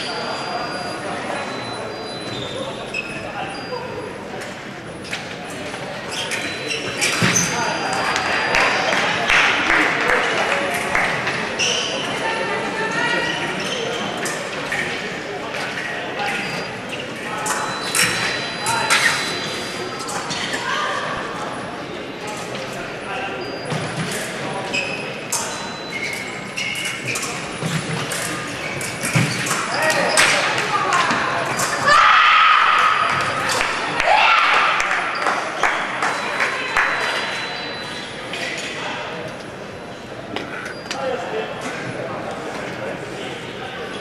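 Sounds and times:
many voices in a hall: 0:00.0 - 0:44.0.

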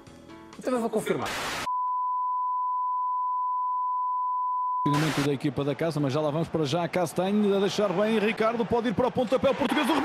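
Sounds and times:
steady test tone beep: 0:01.7 - 0:04.9.

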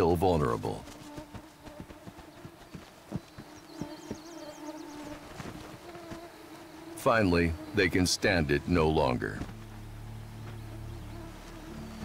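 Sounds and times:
mosquitoes buzzing: 0:00.0 - 0:12.0.

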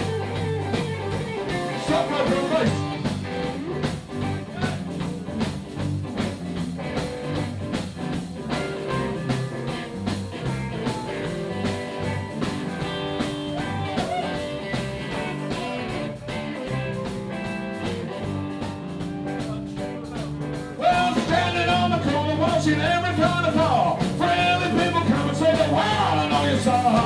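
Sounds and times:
drum beat: 0:00.0 - 0:27.0
electric guitar: 0:00.0 - 0:27.0.

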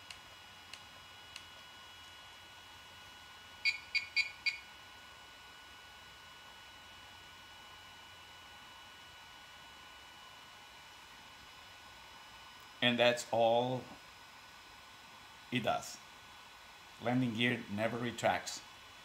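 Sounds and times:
faint electronic whine: 0:00.0 - 0:05.9
high-pitched electronic beeps: 0:03.6 - 0:04.6.

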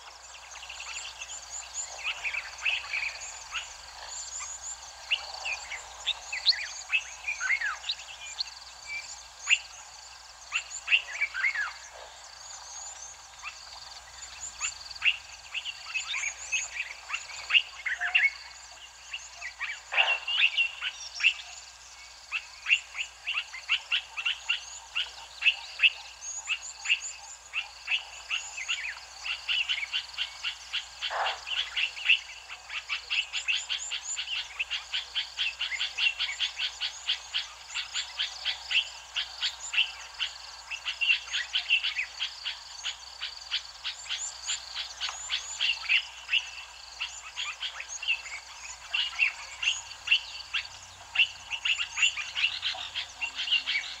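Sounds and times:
frogs calling: 0:00.0 - 0:54.0
birds chirping: 0:00.4 - 0:54.0.

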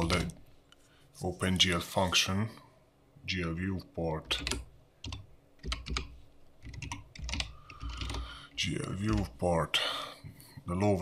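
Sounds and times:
typing on computer keyboard: 0:04.3 - 0:08.3.

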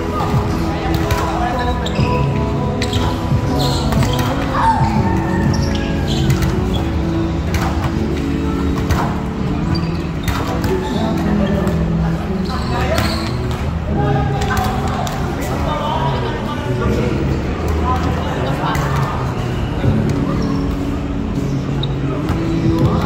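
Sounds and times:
background music: 0:00.0 - 0:23.0
players calling out: 0:00.0 - 0:23.0.

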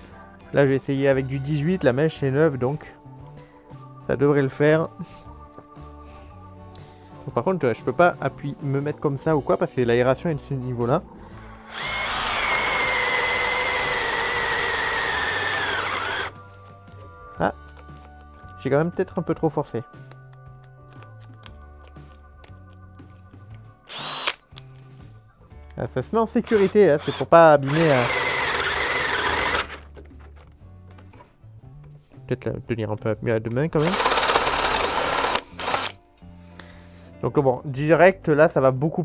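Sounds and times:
cordless drill boring into wood: 0:11.4 - 0:16.4, 0:23.9 - 0:24.4, 0:26.4 - 0:29.9, 0:33.8 - 0:36.0.

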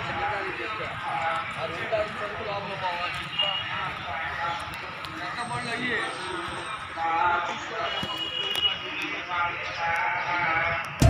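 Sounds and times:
footsteps on pavement: 0:00.0 - 0:10.2
people talking: 0:00.0 - 0:11.0.

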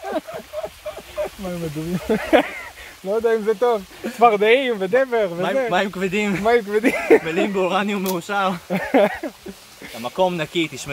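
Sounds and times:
men talking: 0:00.0 - 0:10.9.

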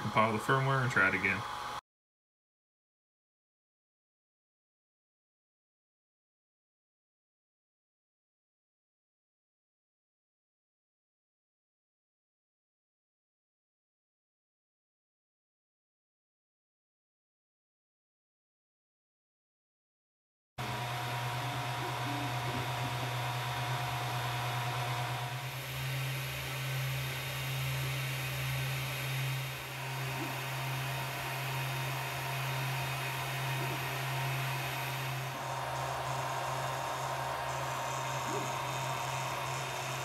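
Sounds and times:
cooling fans whirring: 0:00.0 - 0:01.8, 0:20.6 - 0:40.0
stepper motor tones: 0:20.6 - 0:40.0.

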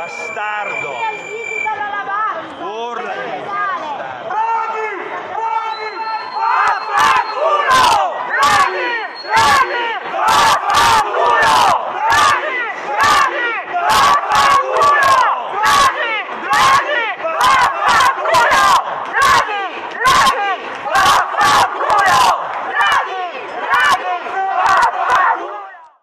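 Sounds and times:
man shouting through a megaphone: 0:00.0 - 0:25.9
crowd shouting angrily: 0:03.1 - 0:26.0.

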